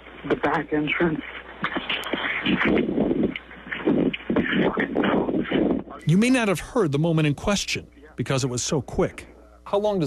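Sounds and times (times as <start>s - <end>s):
muffled telephone noise: 0.0s - 6.5s
person muttering on phone: 0.3s - 6.0s.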